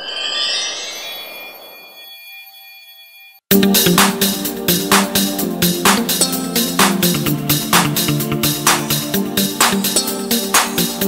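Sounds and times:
sparkling bell-like ringing tones: 0.0s - 3.5s.

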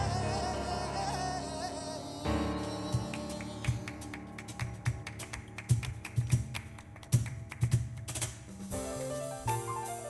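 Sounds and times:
flamenco-jazz music: 2.3s - 10.0s
sharp hand claps: 3.0s - 8.5s.

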